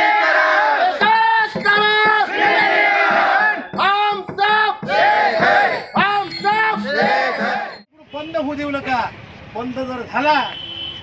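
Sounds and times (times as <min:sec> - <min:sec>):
crowd chanting in unison: 0:00.0 - 0:01.0, 0:02.2 - 0:03.7, 0:04.8 - 0:05.9, 0:06.8 - 0:07.8.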